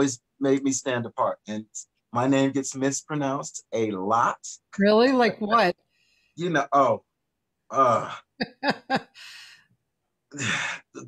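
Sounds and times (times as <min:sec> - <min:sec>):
man laughing: 0:07.8 - 0:09.2
man sighing: 0:10.4 - 0:11.0.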